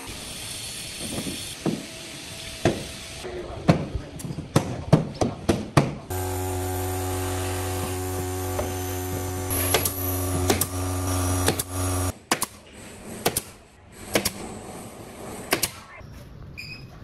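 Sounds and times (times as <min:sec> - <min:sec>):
power tool motor running: 0:06.1 - 0:12.1.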